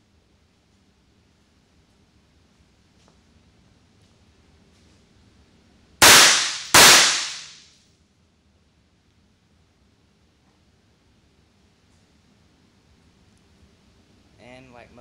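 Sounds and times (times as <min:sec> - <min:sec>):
pistol shots echoing: 0:06.0 - 0:07.6.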